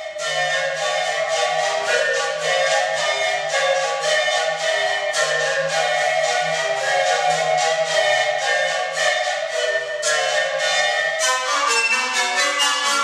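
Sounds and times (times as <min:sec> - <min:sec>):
panpipe ensemble playing: 0:00.0 - 0:13.0.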